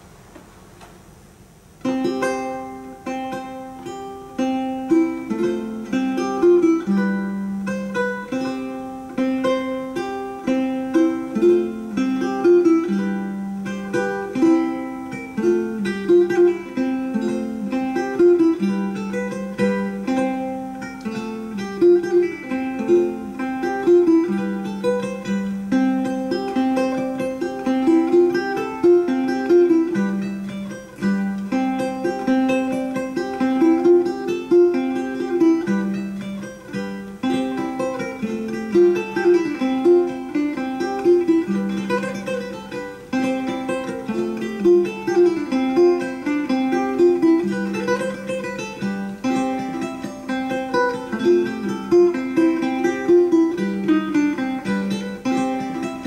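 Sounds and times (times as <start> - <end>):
fingerstyle guitar playing: 1.8 - 56.0.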